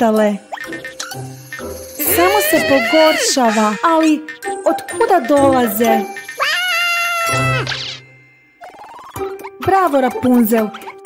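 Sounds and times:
light children's music: 0.0 - 11.0
cartoon meow-like vocal cry: 2.0 - 3.9, 6.3 - 7.8.

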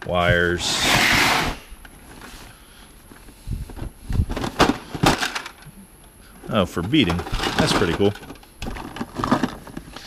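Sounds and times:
plastic bags rustling: 6.5 - 10.0.

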